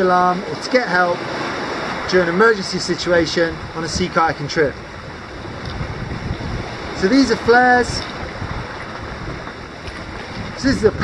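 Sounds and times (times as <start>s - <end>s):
sea wash: 0.0s - 11.0s
wind buffeting microphone: 1.2s - 11.0s.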